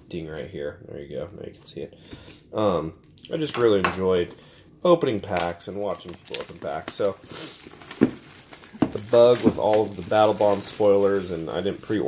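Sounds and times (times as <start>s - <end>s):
plastic wrap crinkling: 2.7s - 12.0s.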